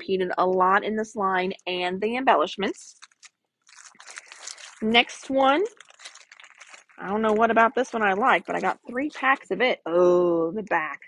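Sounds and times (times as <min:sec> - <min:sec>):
plastic sleeves crinkling: 0:02.6 - 0:09.6.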